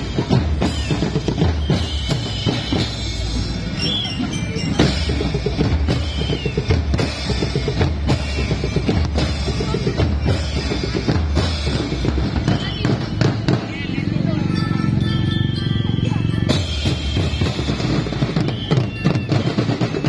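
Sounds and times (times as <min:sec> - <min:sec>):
bass and snare drums beating: 0:00.0 - 0:14.7, 0:16.0 - 0:20.0.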